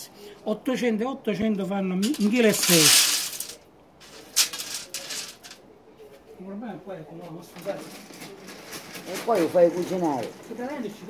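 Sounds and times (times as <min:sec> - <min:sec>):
pellets pouring into metal canister: 0:02.0 - 0:05.6.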